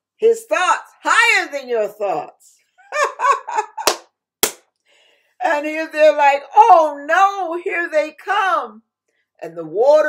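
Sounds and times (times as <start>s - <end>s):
woman laughing: 2.8s - 4.0s.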